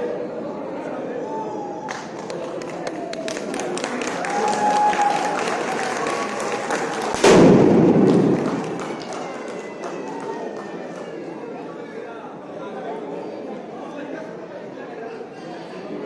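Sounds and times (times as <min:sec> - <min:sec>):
crowd chatter: 0:00.0 - 0:16.0
confetti cannon bang: 0:07.2 - 0:09.2.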